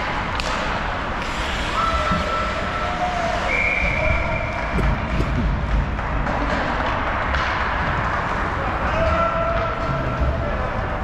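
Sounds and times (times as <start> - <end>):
arena noise: 0.0 - 11.0
skates rushing on ice: 0.0 - 11.0
hockey sticks or puck knocking: 4.5 - 10.3.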